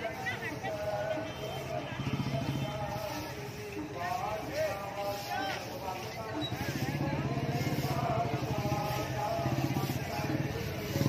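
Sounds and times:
street crowd chatter: 0.0s - 11.0s
vehicle engine running: 6.5s - 11.0s.

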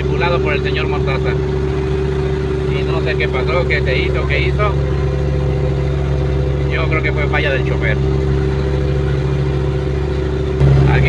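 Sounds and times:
truck diesel engine drone: 0.0s - 11.0s.

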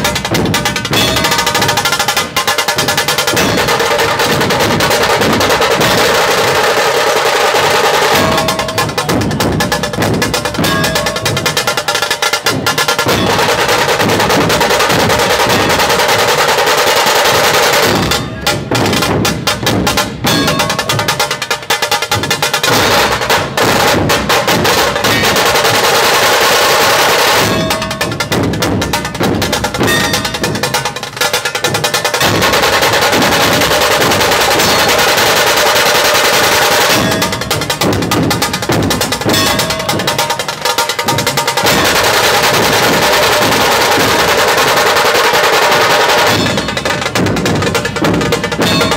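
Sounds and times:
dhol and tasha drums beating: 0.0s - 48.9s.

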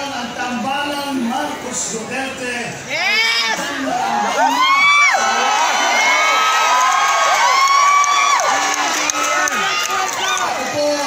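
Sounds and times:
crowd cheering and shouting: 2.9s - 11.0s.

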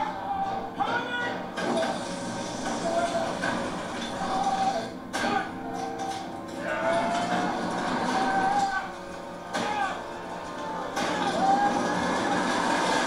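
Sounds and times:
fire rushing: 1.6s - 4.9s, 6.7s - 13.0s.

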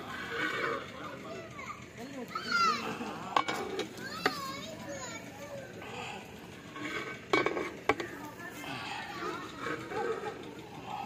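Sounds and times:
children calling: 0.0s - 11.0s.

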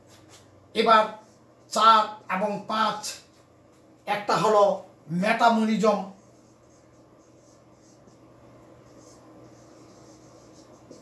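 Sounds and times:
marker writing on whiteboard: 5.8s - 11.0s.

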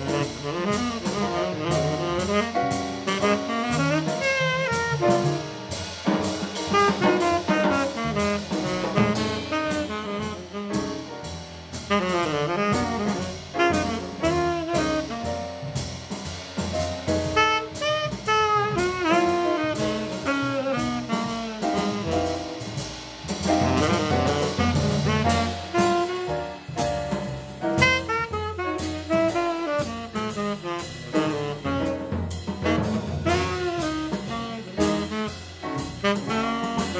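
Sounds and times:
saxophone melody: 0.0s - 5.6s, 6.7s - 11.1s, 11.9s - 15.6s, 17.2s - 22.7s, 23.6s - 26.8s, 27.6s - 36.9s
double bass: 0.0s - 36.9s
drums and cymbals: 0.0s - 36.9s
jazz quartet playing: 0.0s - 36.9s
piano: 0.0s - 36.9s.

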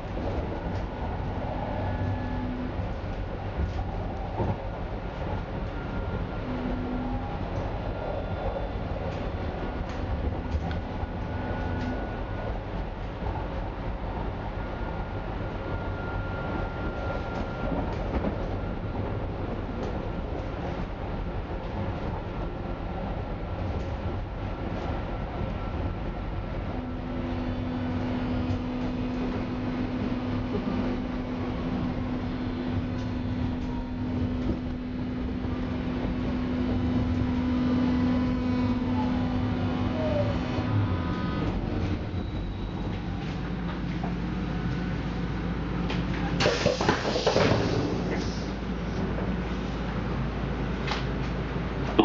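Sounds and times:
subway car rolling rumble: 0.0s - 52.0s
train motor hum: 23.0s - 52.0s.

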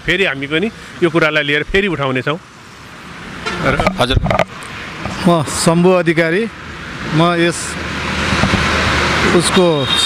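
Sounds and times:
man speaking: 0.0s - 2.4s, 3.5s - 4.4s, 5.1s - 7.8s
vehicle passing close by: 6.8s - 9.9s.

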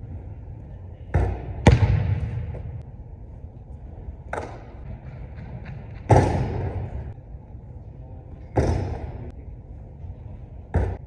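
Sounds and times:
loud echoing thud: 1.2s - 2.8s.

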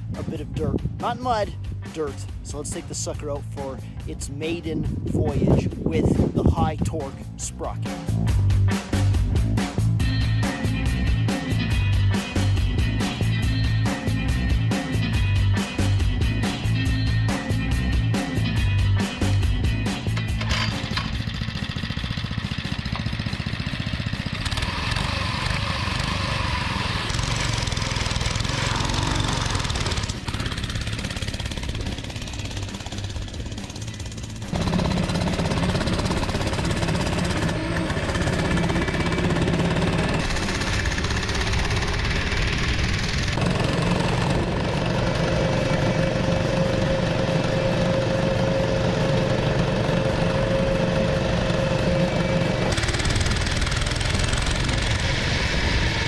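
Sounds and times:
mini bike engine running: 20.3s - 56.0s.

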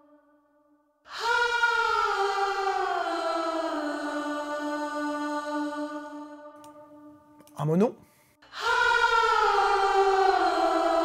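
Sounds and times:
distorted layered backing vocals: 0.0s - 11.0s.

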